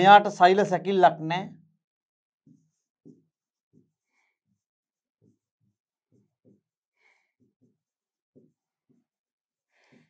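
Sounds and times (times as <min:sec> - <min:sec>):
pen scratching on board: 0:02.4 - 0:10.0.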